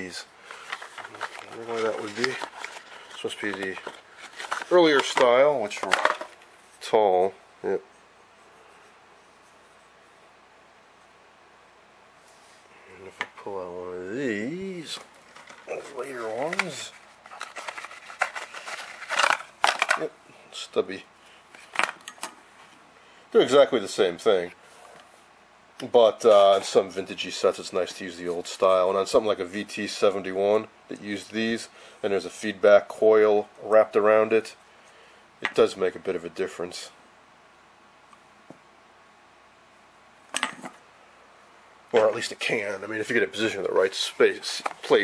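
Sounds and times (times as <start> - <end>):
cardboard rustling and scraping: 0.5 - 6.4, 14.8 - 20.0.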